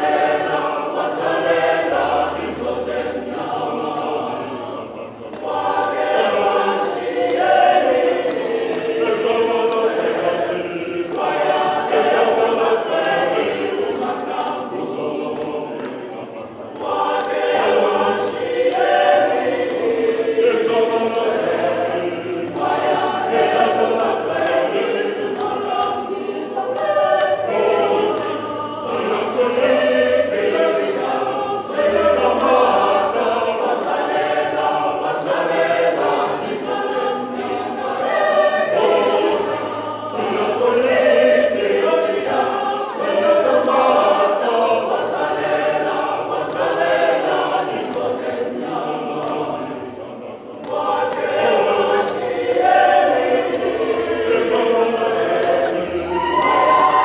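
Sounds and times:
hand claps: 0.0 - 44.2, 46.5 - 57.0
choir singing a cappella: 0.0 - 57.0.

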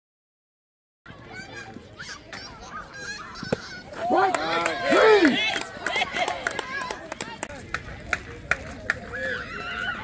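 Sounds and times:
people talking and calling out: 1.1 - 10.0.

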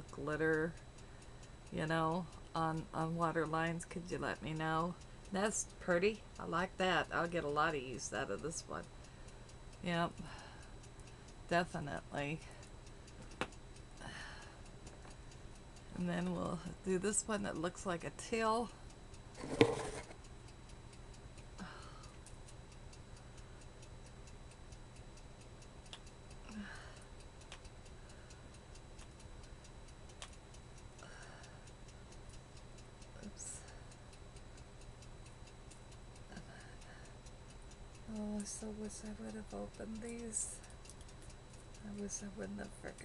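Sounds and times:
clock ticking: 0.0 - 43.0.

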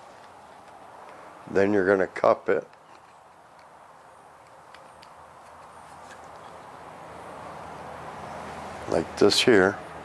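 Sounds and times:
plastic tubing handling clicks: 2.6 - 3.8, 4.4 - 6.5.

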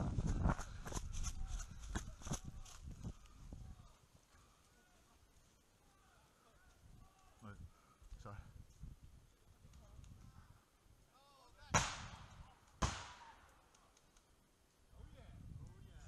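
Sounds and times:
sharp loud bangs: 11.8 - 13.4.

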